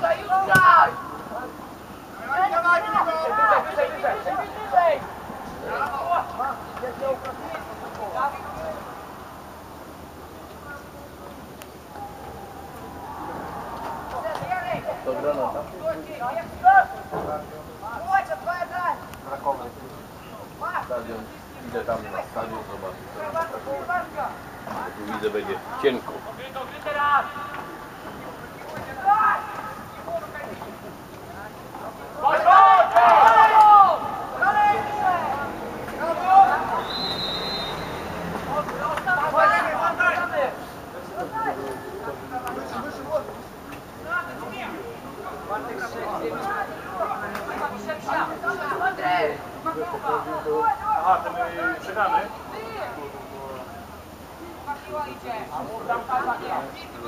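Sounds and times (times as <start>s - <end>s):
loud shouts of players: 0.0s - 1.6s, 2.2s - 7.4s, 11.8s - 15.4s, 28.7s - 30.0s, 32.1s - 40.5s
crowd voices calling out: 11.7s - 17.2s, 32.0s - 42.1s
referee's whistle blast: 36.8s - 38.0s.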